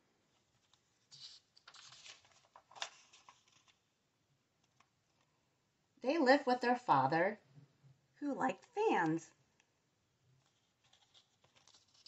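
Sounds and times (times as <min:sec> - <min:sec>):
book page turning: 0:00.4 - 0:03.9, 0:10.4 - 0:12.0.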